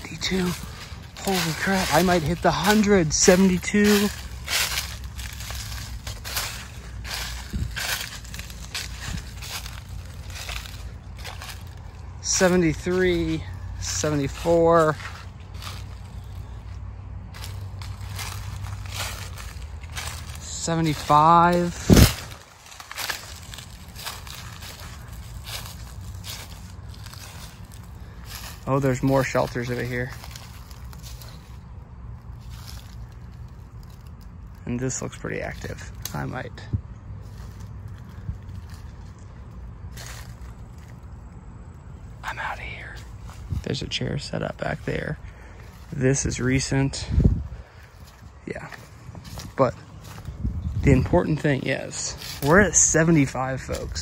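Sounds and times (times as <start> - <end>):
brush rustling: 0.0 - 54.0
footsteps crunching dry leaves: 0.0 - 54.0
low rumble of wind on microphone: 0.0 - 54.0.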